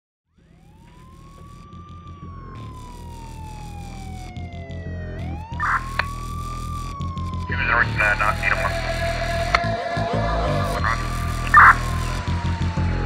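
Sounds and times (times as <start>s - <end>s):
siren wailing: 0.4s - 13.0s
steady low drone: 0.4s - 13.0s.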